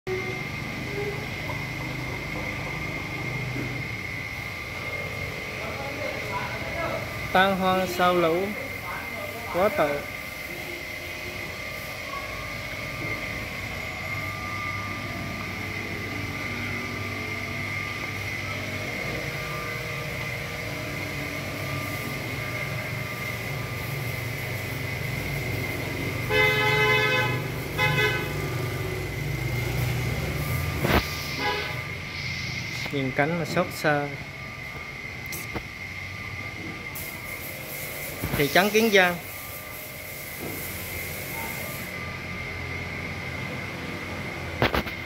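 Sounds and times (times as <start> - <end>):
steady low hum: 0.1 - 45.0
horn toots: 26.2 - 28.6, 31.2 - 31.9.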